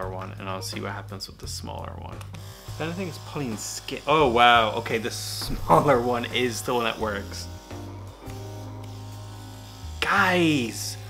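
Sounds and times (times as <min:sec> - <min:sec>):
small motor buzzing: 0:02.2 - 0:11.0.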